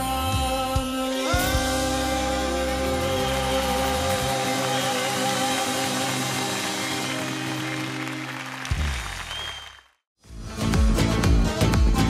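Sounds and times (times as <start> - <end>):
audience clapping: 3.2 - 10.0.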